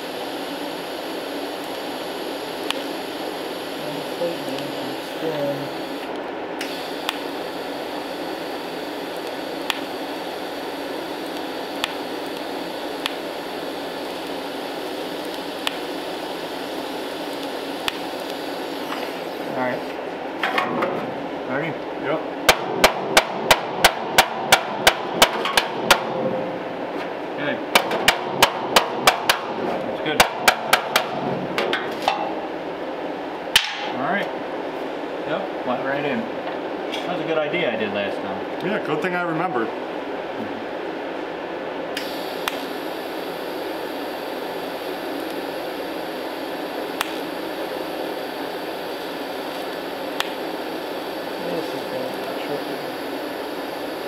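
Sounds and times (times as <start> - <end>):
arc welder hissing and crackling: 0.0 - 20.4, 22.4 - 32.6, 41.9 - 54.0
hammer striking metal: 22.5 - 26.2.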